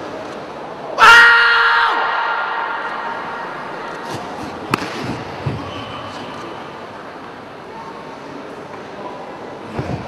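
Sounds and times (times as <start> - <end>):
loud yell echoing in hall: 0.9 - 3.9.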